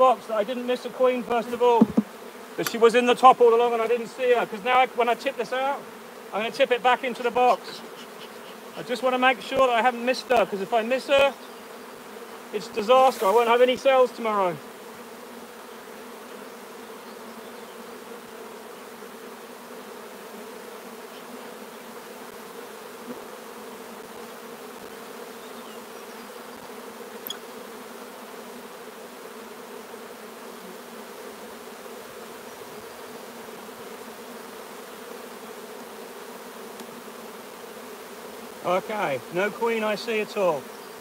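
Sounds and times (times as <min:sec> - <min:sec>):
bees buzzing: 0:00.0 - 0:41.0.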